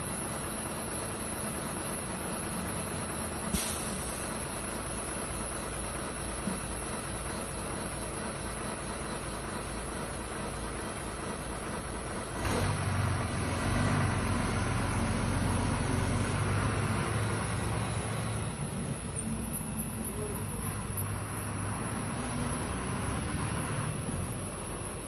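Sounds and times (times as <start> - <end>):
engine idling hum: 0.0 - 25.0
low engine drone: 0.0 - 25.0.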